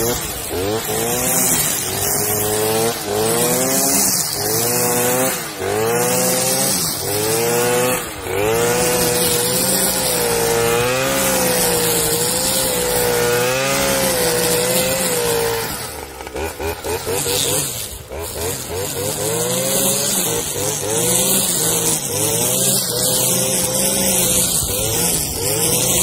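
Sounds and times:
brush cutter cutting grass: 0.0s - 26.0s.

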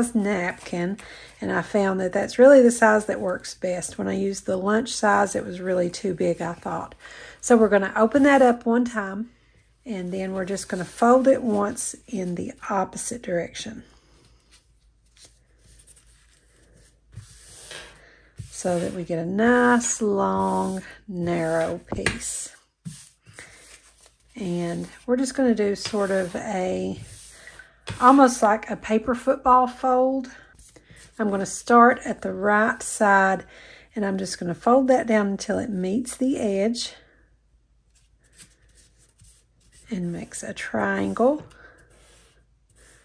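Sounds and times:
paper napkin rustling: 14.4s - 22.0s, 22.8s - 25.0s.

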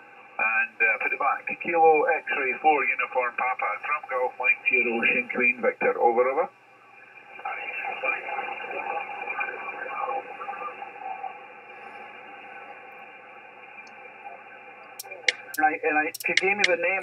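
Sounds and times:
radio static and hiss: 0.0s - 17.0s
faint distant radio voice: 7.3s - 17.0s.

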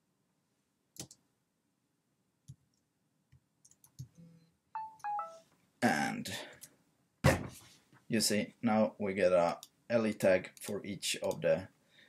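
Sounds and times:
falling electronic tones: 4.8s - 5.4s.

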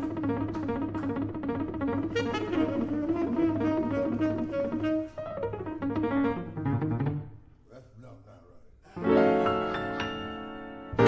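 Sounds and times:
tenor saxophone: 0.0s - 6.6s
grand piano: 0.0s - 11.0s.

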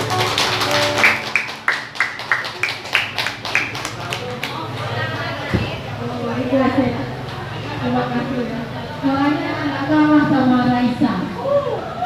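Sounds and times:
held instrumental notes: 0.0s - 2.9s.

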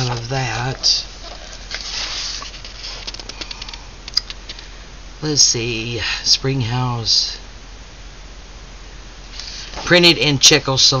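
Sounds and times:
book pages rustling: 0.0s - 3.7s.

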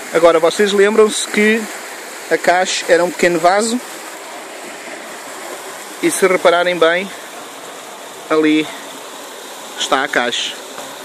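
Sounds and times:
running water: 0.0s - 11.0s.

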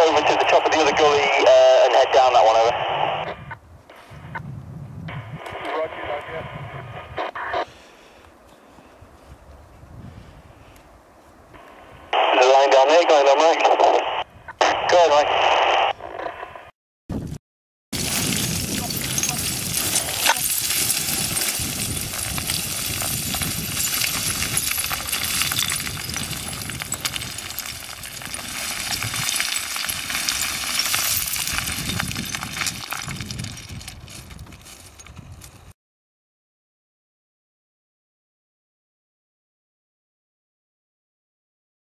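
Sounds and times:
voice over two-way radio: 0.0s - 3.6s, 5.1s - 7.7s, 12.2s - 16.5s.

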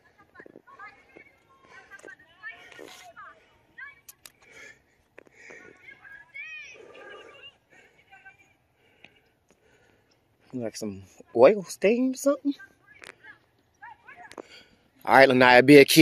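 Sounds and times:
distant voices talking: 0.0s - 15.4s.

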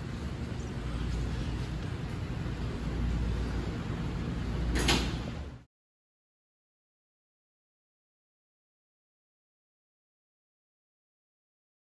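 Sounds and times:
kitchen rumble and hiss: 0.0s - 5.7s.

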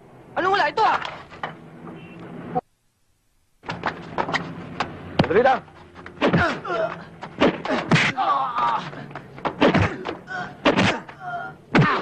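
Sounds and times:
punch impacts: 6.2s - 8.8s, 9.4s - 12.0s
pained cries and grunts: 6.2s - 12.0s.

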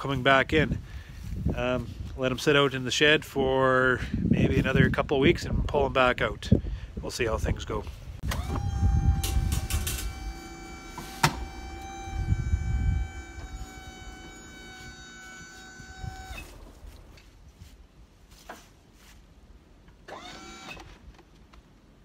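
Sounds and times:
low rumbling: 6.6s - 17.7s
hydraulic pump motor whining: 8.2s - 17.3s, 20.0s - 21.0s.

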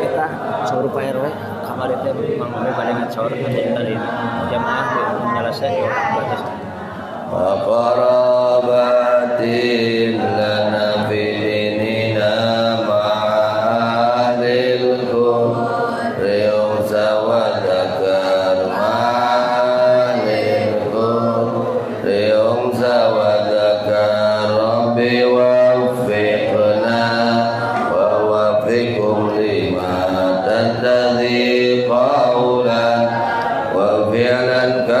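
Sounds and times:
man chanting a prayer: 0.0s - 6.5s, 16.2s - 33.1s.

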